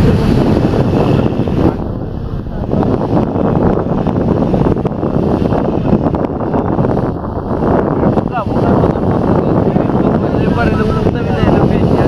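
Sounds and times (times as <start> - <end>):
boat running: 0.0 - 12.0
churned river water rushing: 0.0 - 12.0
wind buffeting microphone: 0.0 - 12.0.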